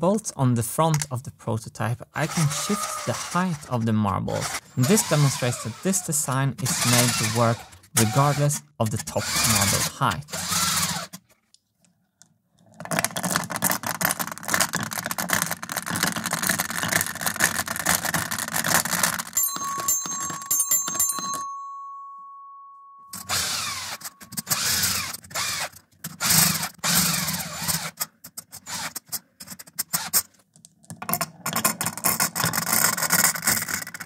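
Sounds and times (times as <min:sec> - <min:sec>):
ringing tone: 0:19.4 - 0:24.4.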